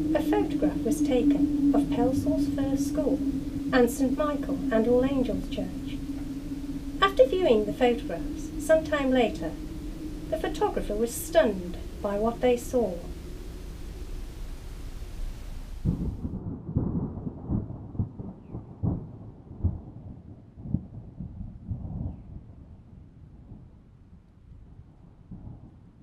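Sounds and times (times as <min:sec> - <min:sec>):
thunder cracks: 0:00.0 - 0:23.7
rolling thunder rumble: 0:00.0 - 0:26.0.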